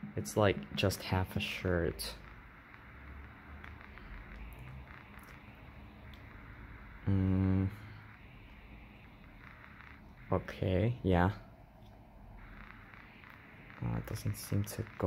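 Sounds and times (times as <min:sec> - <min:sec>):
man humming: 0:07.0 - 0:07.8.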